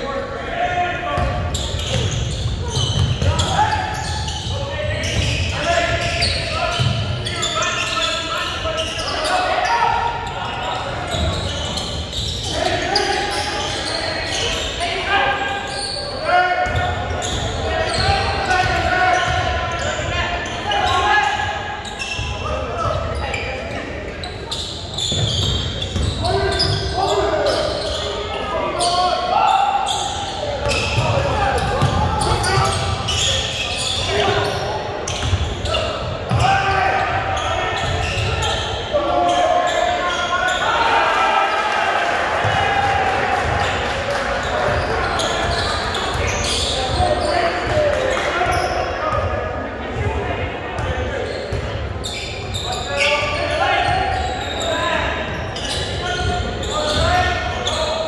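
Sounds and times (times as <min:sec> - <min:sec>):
basketball bouncing on court: 0:01.2 - 0:03.6, 0:06.7 - 0:07.2, 0:30.6 - 0:32.9.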